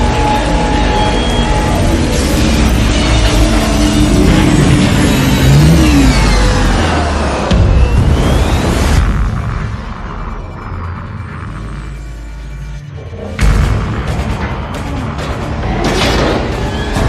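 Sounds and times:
action film music score: 0:00.0 - 0:17.0
rumbling and booms of explosions: 0:00.0 - 0:17.0.

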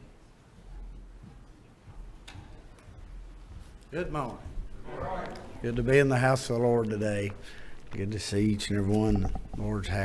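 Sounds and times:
footsteps tapping: 0:00.5 - 0:10.0.

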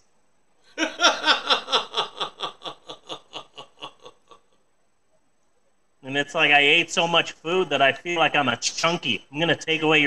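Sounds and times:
person laughing: 0:00.7 - 0:04.6.

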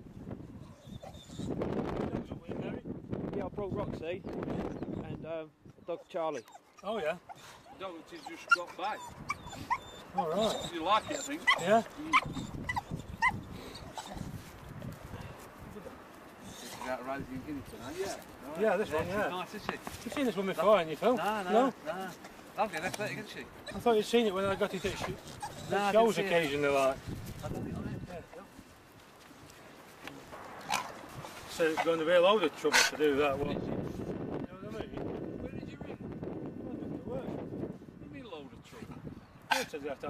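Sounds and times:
dog whining: 0:00.6 - 0:01.6, 0:06.0 - 0:14.4, 0:24.6 - 0:26.2.

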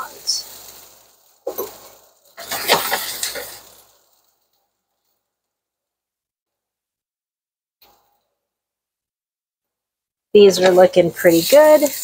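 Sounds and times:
onions sizzling in a skillet: 0:00.0 - 0:05.2, 0:10.4 - 0:12.0
scraping and clattering: 0:01.5 - 0:03.8.

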